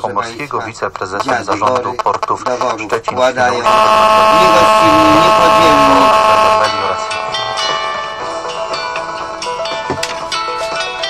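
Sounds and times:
loud held chord: 3.7s - 9.3s
quiet instrumental music: 6.6s - 11.0s.

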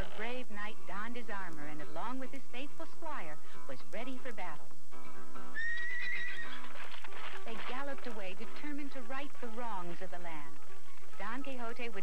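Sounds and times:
background music: 0.0s - 12.0s
horse whinnying: 5.5s - 7.5s.

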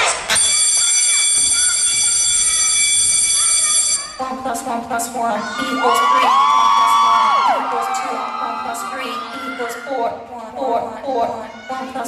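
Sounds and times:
high-pitched electronic buzz: 0.3s - 4.2s.

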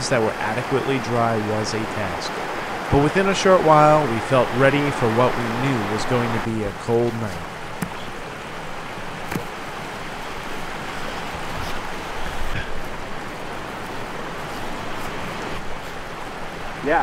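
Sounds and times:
mountain stream rushing: 0.0s - 17.0s.

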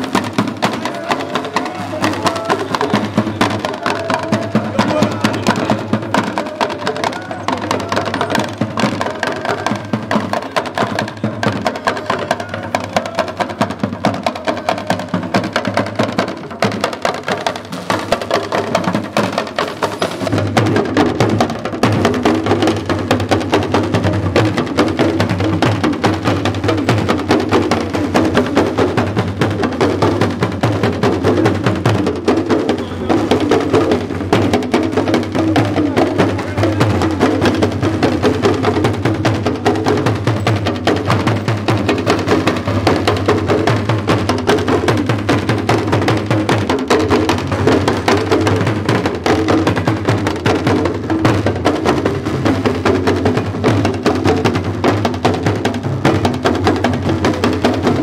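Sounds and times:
talking drums playing dance rhythm: 0.0s - 58.0s.

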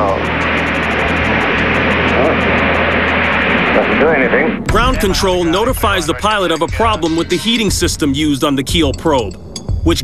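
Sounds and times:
radio channel hiss and rumble: 0.0s - 8.7s.

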